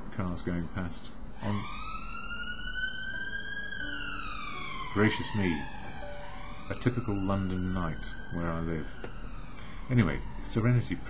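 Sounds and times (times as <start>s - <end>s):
police siren wailing: 1.4s - 11.0s.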